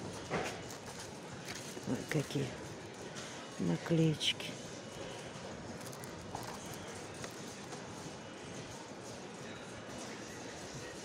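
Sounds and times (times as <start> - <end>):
supermarket background noise: 0.0 - 11.0.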